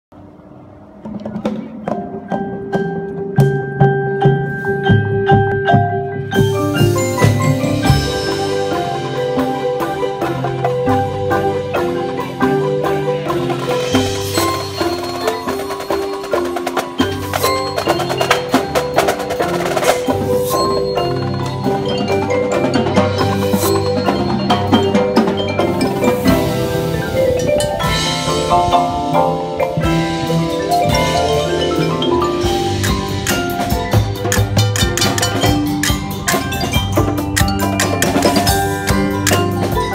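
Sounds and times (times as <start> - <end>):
marimbas and vibraphones playing: 1.4 - 39.9.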